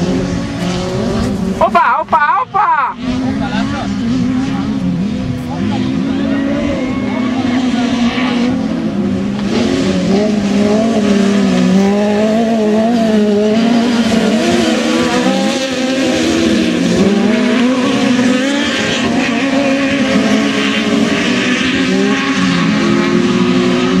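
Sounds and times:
buggy engines revving: 0.0s - 24.0s.

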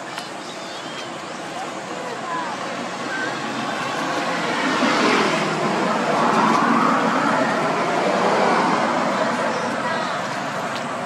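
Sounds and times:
faint bird chirps: 0.2s - 1.5s
passing vehicle rushing: 2.7s - 10.6s.

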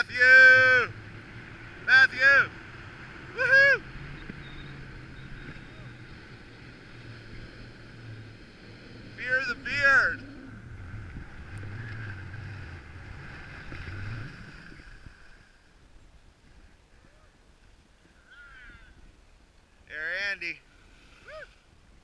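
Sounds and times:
wind on microphone: 7.2s - 19.6s.

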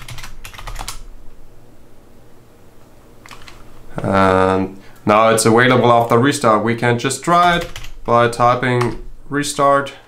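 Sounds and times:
computer keyboard keys tapping: 0.0s - 1.0s, 3.2s - 3.6s, 7.3s - 9.0s.

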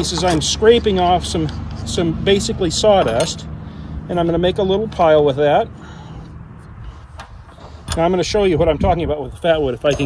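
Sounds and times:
wind rumbling on microphone: 6.7s - 10.0s.

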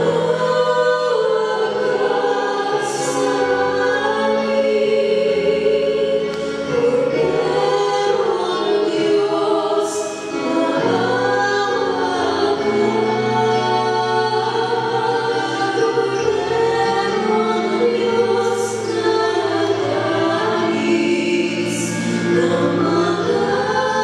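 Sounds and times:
choir singing a hymn: 0.0s - 24.0s.

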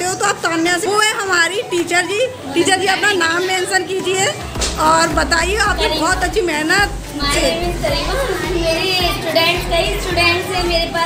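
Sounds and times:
women and children talking: 0.0s - 11.0s.

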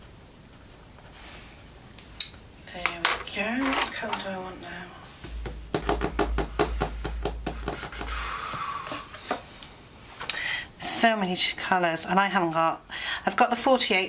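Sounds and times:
pencils clinking and rattling: 2.9s - 4.3s
low muttering: 5.0s - 10.1s.

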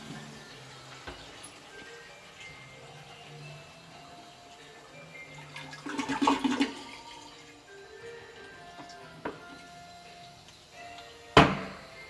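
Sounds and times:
toilet flushing: 0.0s - 12.0s.

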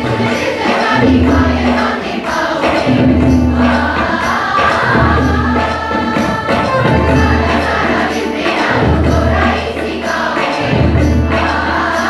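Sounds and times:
large choir singing folk song: 0.0s - 12.0s
light percussion: 0.0s - 12.0s.

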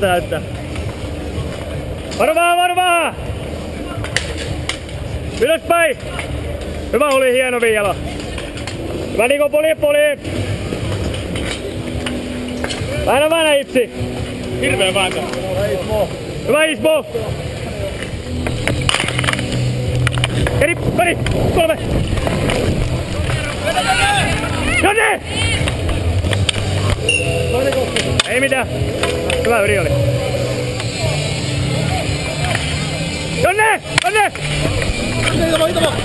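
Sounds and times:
distant voices: 0.0s - 36.0s
steady noisy rumble: 0.0s - 36.0s
wind rumble on camera: 20.2s - 24.6s
players shouting: 20.4s - 36.0s.

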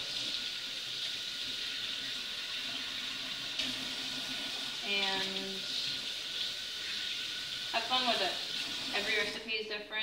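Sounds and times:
faucet running into steel sink: 0.0s - 9.7s.

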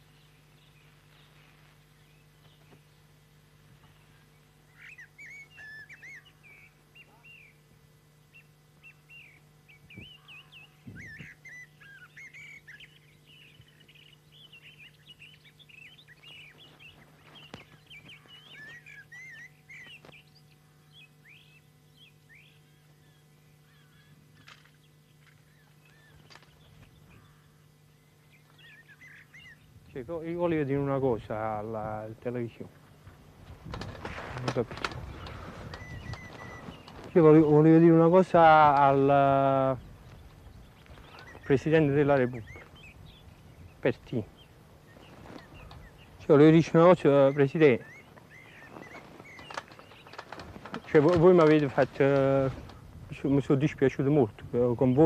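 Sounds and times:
birds chirping: 0.0s - 55.0s
steady low hum: 0.0s - 55.0s.

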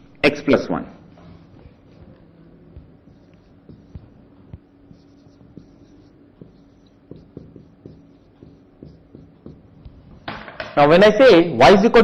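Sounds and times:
steady low hum: 0.0s - 12.0s
marker pen on whiteboard: 0.9s - 11.0s.

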